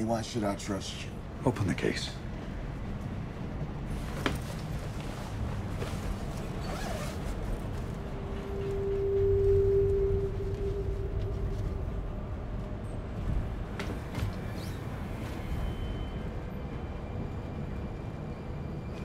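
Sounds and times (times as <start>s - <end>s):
train carriage rumble: 0.0s - 19.0s
soft handling and zip sounds: 3.9s - 8.8s
steady low tone: 7.3s - 17.1s.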